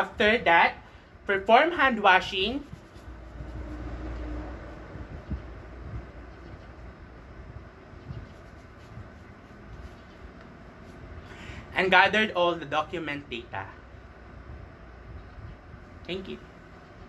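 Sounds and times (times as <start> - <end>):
faint low rumble: 2.6 - 11.7.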